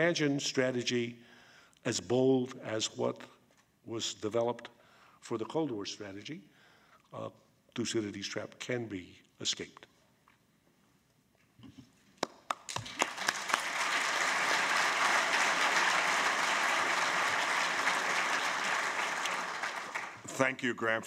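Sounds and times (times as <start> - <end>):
audience applause: 12.2 - 20.4.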